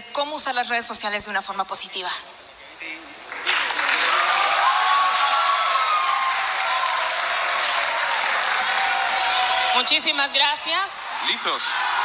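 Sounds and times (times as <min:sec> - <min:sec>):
crowd applause: 0:03.2 - 0:12.0
crowd cheering: 0:03.2 - 0:12.0.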